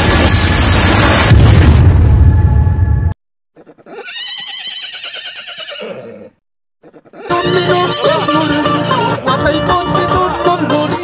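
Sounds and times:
horse whinnying: 3.6 - 8.2.

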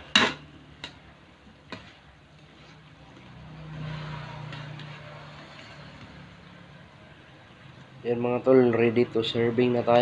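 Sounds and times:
passing vehicle engine hum: 2.7 - 7.4.

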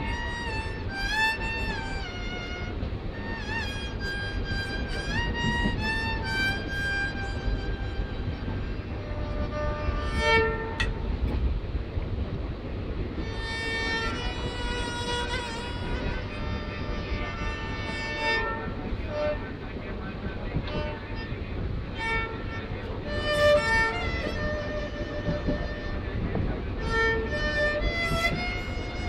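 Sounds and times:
bowed fiddle melody: 0.0 - 29.0
train rumble: 0.0 - 29.0.

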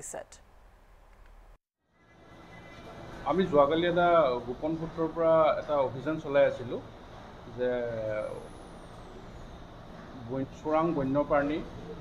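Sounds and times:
man speaking: 7.6 - 8.4, 10.2 - 11.7.

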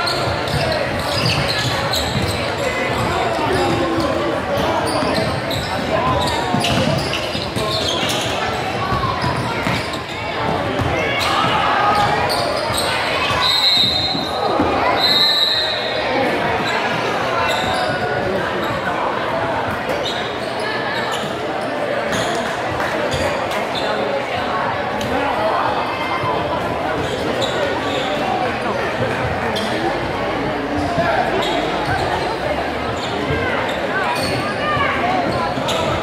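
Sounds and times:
crowd talking and calling out: 0.0 - 36.0
referee's whistle: 13.3 - 16.0.

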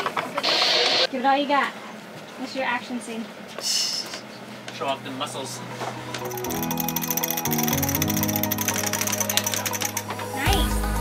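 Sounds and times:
held synth notes: 4.9 - 11.0
fast even ticking: 6.2 - 10.1.

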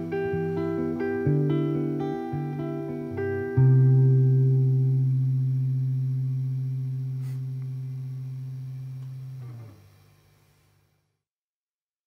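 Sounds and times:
electric guitar chord ringing: 0.0 - 9.9.

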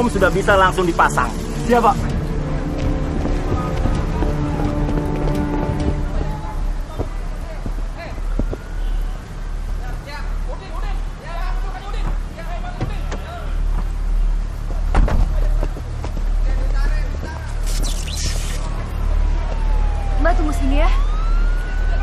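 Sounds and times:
emergency vehicle siren wailing: 0.0 - 9.4, 17.7 - 22.0
steady low rumble: 0.0 - 11.5.

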